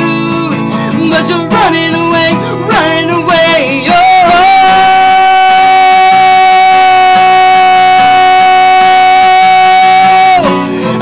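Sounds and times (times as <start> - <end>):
acoustic guitar: 0.0 - 11.0
man singing a long high note: 0.0 - 11.0.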